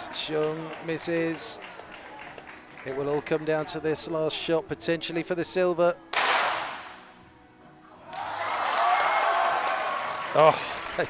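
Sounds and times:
spectators cheering: 0.0s - 2.4s, 8.1s - 11.0s.

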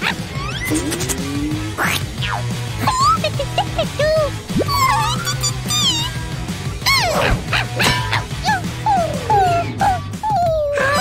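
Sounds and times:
cartoon animal yelps: 0.0s - 6.2s, 6.8s - 11.0s
upbeat background music: 0.0s - 11.0s.

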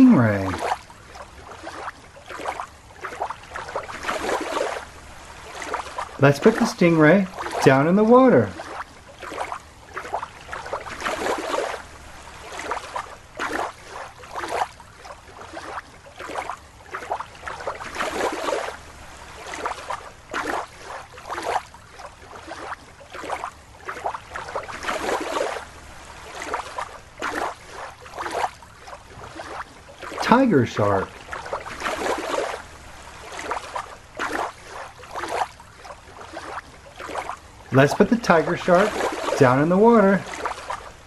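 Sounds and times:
water splashing and sloshing: 0.0s - 41.0s.

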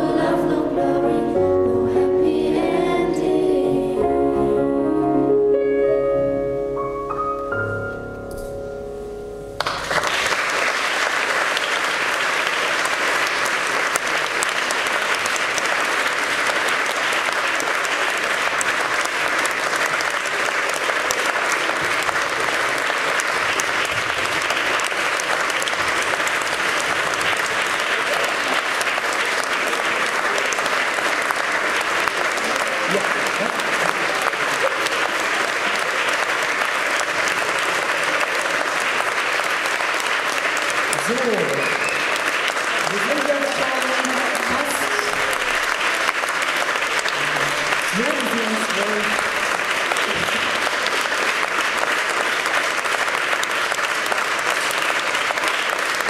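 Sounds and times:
audience applause: 9.6s - 56.0s.

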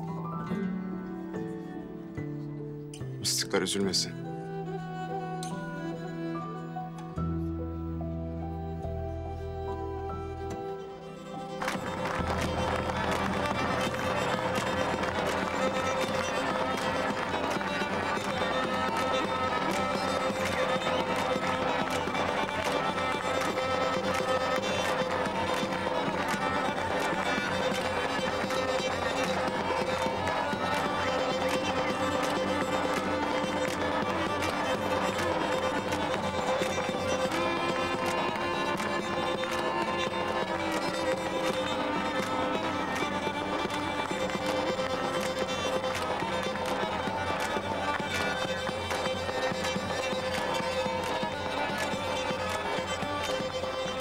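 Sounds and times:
bowed fiddle melody over drone: 3.7s - 54.0s.

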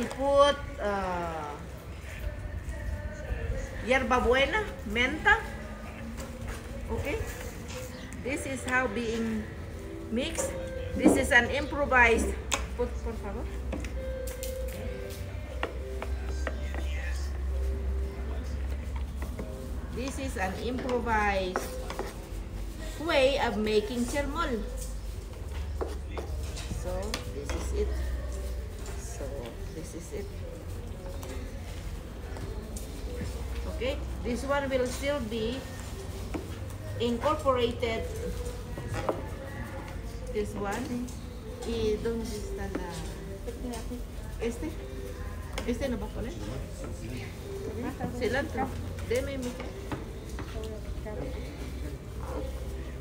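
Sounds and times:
voices talking: 0.0s - 53.0s.

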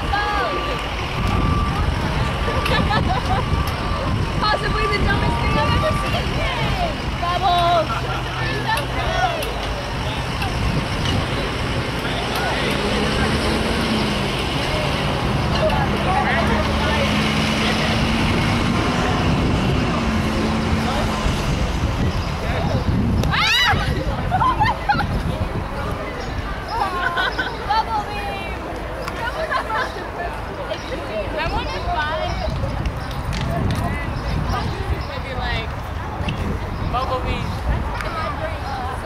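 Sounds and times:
engine hum: 0.0s - 39.0s
people's voices: 0.0s - 39.0s
road traffic rumble: 0.0s - 39.0s.

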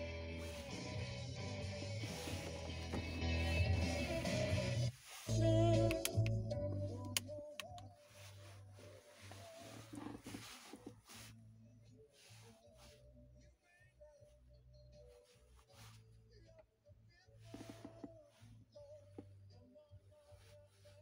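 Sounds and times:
music from car stereo: 0.0s - 21.0s
short clicks: 5.7s - 7.9s.

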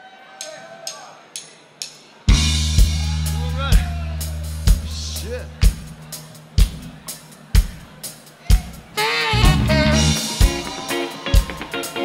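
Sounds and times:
live rock band playing: 2.3s - 12.0s.

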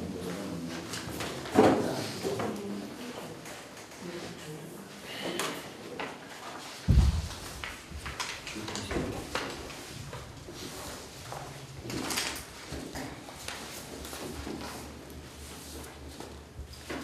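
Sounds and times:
papers rustling: 6.4s - 17.0s.

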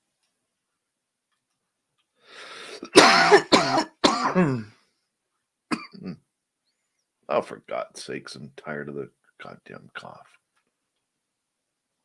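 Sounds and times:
short intake of breath: 2.2s - 2.9s
man coughing: 2.8s - 4.8s, 5.7s - 6.2s.

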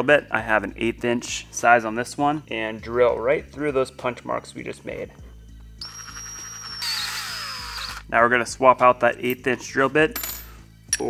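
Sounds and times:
cordless drill boring through plastic: 5.8s - 8.1s.

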